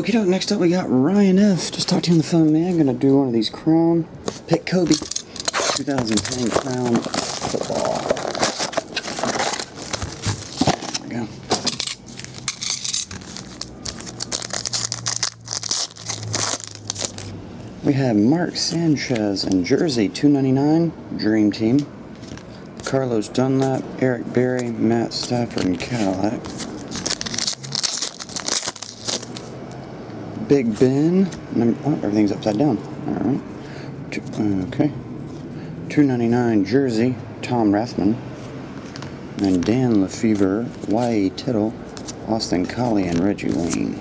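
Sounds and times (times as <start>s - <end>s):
plastic shrink wrap crinkling: 4.8s - 17.3s, 25.2s - 29.5s
cardboard box being opened: 5.5s - 12.4s.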